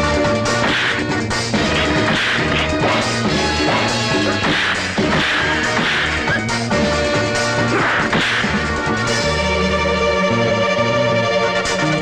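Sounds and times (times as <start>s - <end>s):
fight scene background music: 0.0s - 10.0s
punch sound effects: 0.6s - 6.4s, 7.8s - 8.6s.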